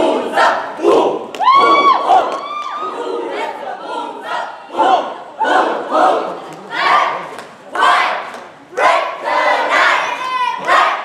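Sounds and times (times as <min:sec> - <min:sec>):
cheerleaders shouting in unison: 0:00.0 - 0:11.0.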